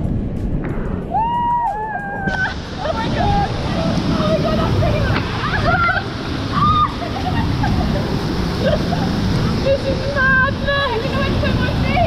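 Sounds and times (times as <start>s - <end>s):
rushing water: 1.1s - 12.0s.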